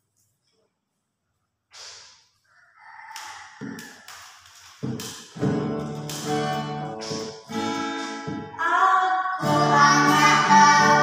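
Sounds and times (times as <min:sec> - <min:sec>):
rooster crowing: 0:02.4 - 0:04.4
acoustic guitar strings: 0:05.3 - 0:11.0.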